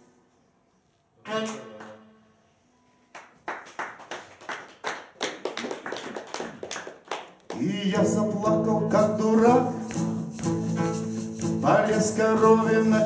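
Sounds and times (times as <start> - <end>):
sharp rhythmic hits: 7.6 - 13.0.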